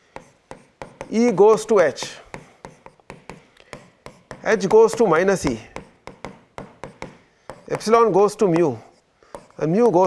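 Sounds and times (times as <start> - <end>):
stylus tapping on tablet screen: 0.0 - 10.0.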